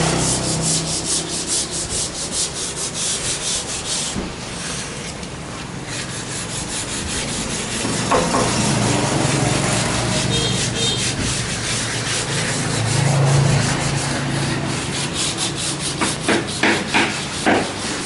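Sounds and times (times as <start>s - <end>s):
wood being sanded: 0.0s - 18.0s.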